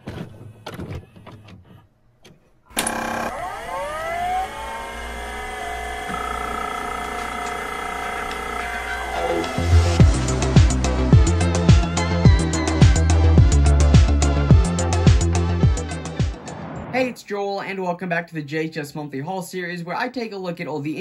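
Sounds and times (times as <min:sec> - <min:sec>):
synthesized tones gliding upward: 0:03.3 - 0:11.1
heavy bass beat: 0:08.4 - 0:16.7.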